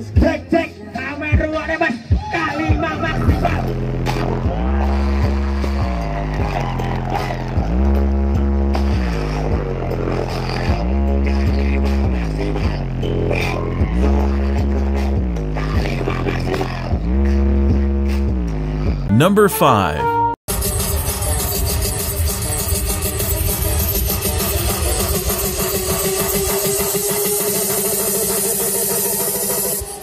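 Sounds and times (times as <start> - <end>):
dance music with heavy bass: 19.1 - 20.0.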